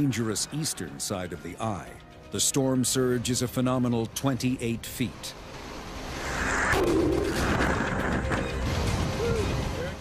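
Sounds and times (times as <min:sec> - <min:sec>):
faint background music: 0:00.0 - 0:06.2, 0:06.9 - 0:10.0
water rushing: 0:02.6 - 0:10.0.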